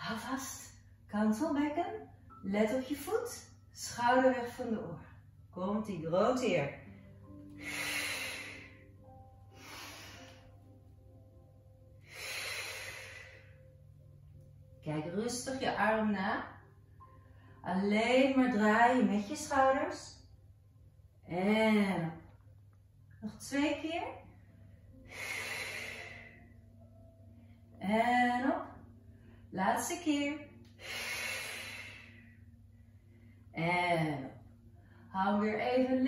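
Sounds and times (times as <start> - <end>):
faint background music: 0.0 - 36.0
woman breathing: 6.9 - 14.5, 24.3 - 27.8, 30.6 - 33.6.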